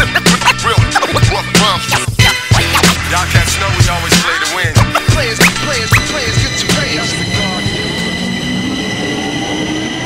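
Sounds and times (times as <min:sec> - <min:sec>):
train rumble: 0:05.1 - 0:10.0
metro train whine: 0:05.6 - 0:10.0.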